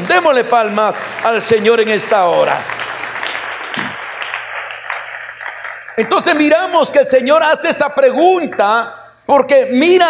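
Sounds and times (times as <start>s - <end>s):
crowd applauding: 0.0s - 7.0s.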